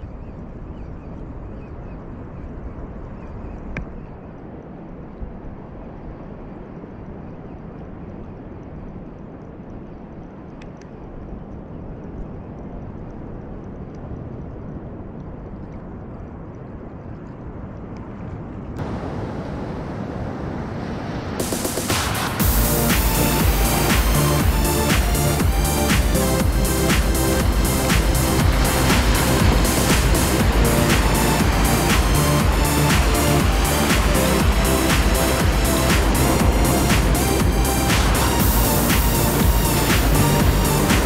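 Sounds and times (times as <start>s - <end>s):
surf: 18.8s - 41.0s.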